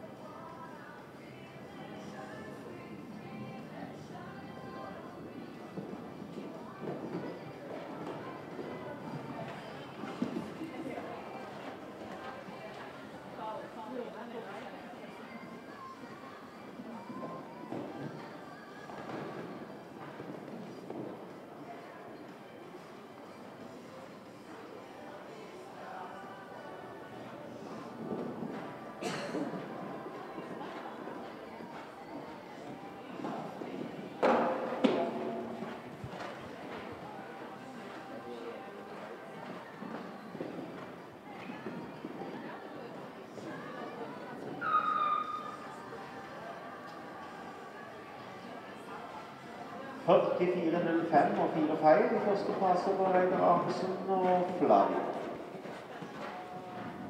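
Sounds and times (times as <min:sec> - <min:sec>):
music: 0:00.0 - 0:57.0.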